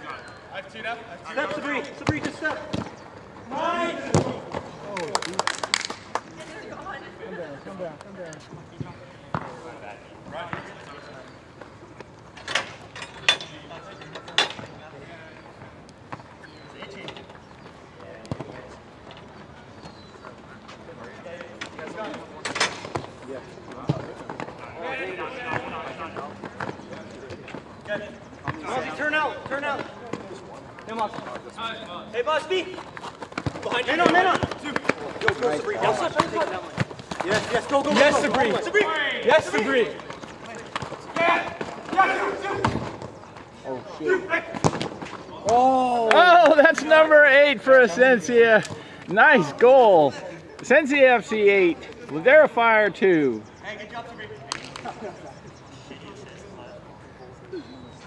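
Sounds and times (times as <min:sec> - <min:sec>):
players shouting: 0:03.4 - 0:05.1, 0:33.4 - 0:43.0, 0:43.6 - 0:54.3
ball kick thuds: 0:04.0 - 0:04.8, 0:44.5 - 0:45.6.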